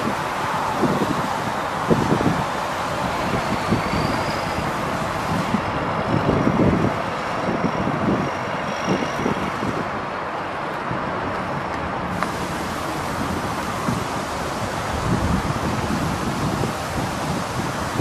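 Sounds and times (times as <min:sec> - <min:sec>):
wind buffeting microphone: 0:00.0 - 0:10.1, 0:10.8 - 0:18.0
diesel engine running: 0:12.0 - 0:18.0.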